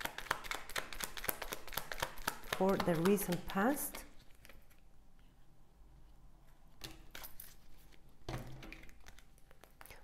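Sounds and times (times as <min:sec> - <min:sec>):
cards clicking and rustling: 0:00.0 - 0:04.8, 0:06.8 - 0:10.0.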